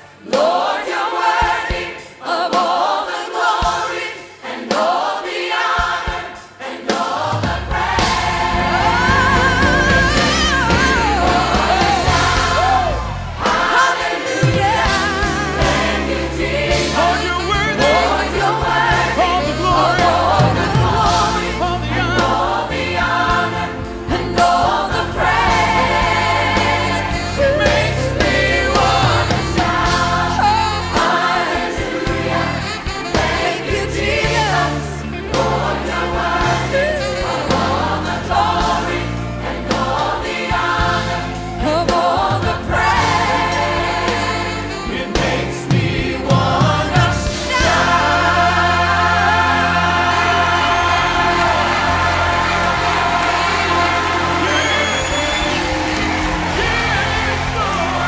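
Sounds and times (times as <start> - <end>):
choir singing with instruments: 0.0 - 58.0.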